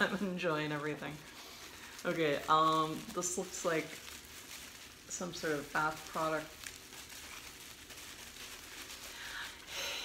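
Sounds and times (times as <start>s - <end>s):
packaging crinkling: 0.0s - 10.0s.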